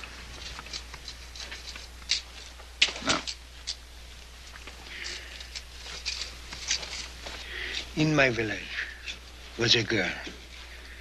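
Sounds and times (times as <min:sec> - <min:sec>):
steady low hum: 0:00.0 - 0:11.0
man breathing: 0:07.2 - 0:08.0
man speaking softly: 0:08.0 - 0:09.0, 0:09.6 - 0:10.4.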